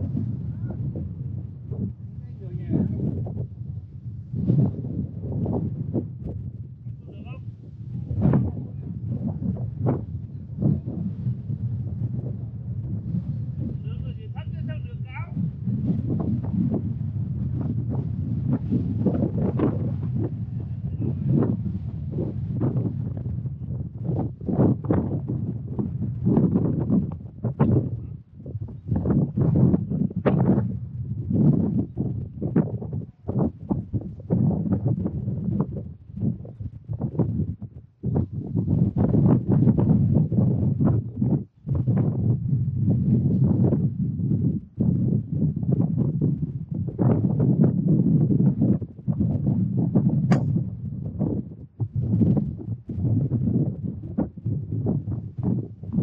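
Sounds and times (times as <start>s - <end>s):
wind buffeting microphone: 0.0s - 56.0s
golf club striking ball: 50.2s - 50.7s.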